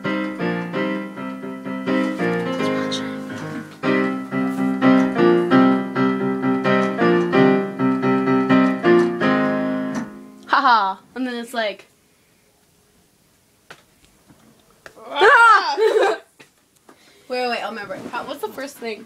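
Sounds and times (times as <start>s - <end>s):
piano repeated chords: 0.0s - 11.0s.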